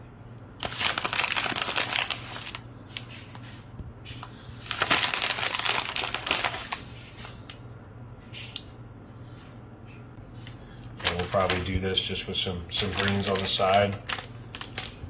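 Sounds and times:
plastic bag crinkling: 0.6s - 3.5s, 4.6s - 7.4s, 10.9s - 11.8s, 12.7s - 15.0s.

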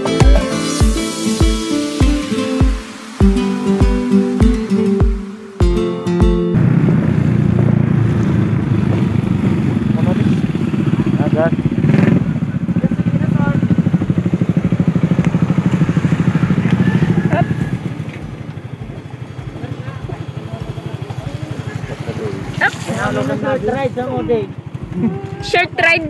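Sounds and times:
motorcycle engine running: 0.0s - 26.0s.

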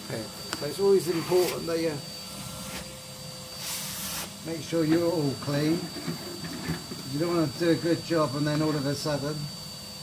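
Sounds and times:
vacuum cleaner whining: 0.0s - 10.0s
vacuum hose airflow hiss: 0.6s - 5.8s.

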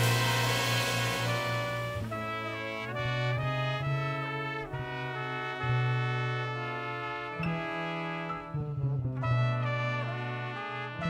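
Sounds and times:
low bass note: 0.0s - 3.4s
brass section chords: 0.0s - 11.0s
jazz big band playing: 0.0s - 11.0s.

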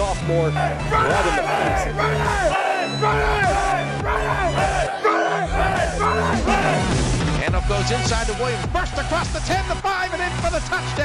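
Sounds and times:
background music with bass: 0.0s - 11.0s
men yelling short shouts: 0.6s - 6.9s.

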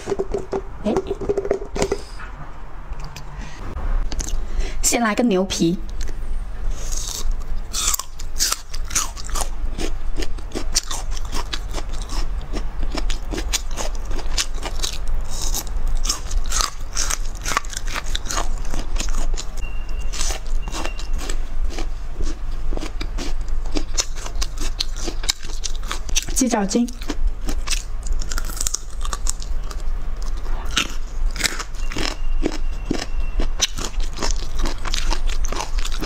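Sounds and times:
woman chewing crunchy food: 6.8s - 36.0s.

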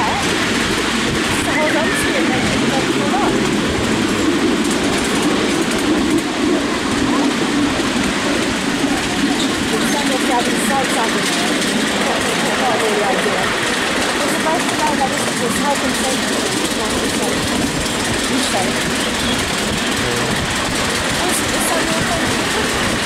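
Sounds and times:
train wheels running on track: 0.0s - 23.0s.

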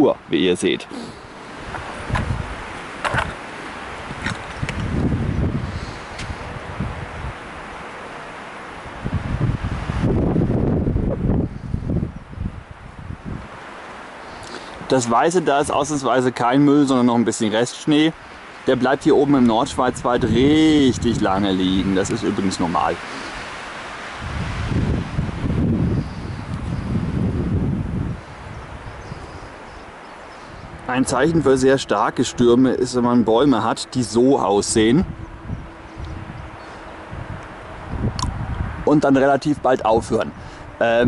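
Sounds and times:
wind buffeting microphone: 0.0s - 7.9s, 8.8s - 13.8s, 18.2s - 41.0s.

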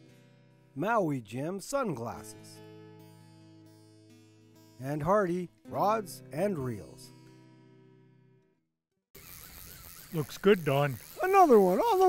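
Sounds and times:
acoustic guitar music: 0.0s - 8.6s.

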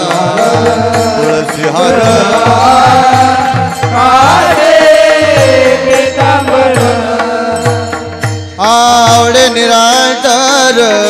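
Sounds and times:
person singing: 0.0s - 7.8s
drum beat: 0.0s - 10.4s
hand cymbals: 0.0s - 11.0s.

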